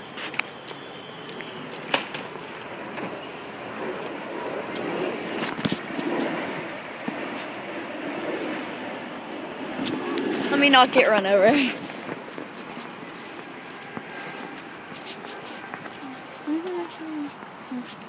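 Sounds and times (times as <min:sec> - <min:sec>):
rustling of hand-held camera: 0:00.0 - 0:08.6, 0:11.6 - 0:18.0
footsteps: 0:00.0 - 0:18.0
steady background noise: 0:00.0 - 0:18.0.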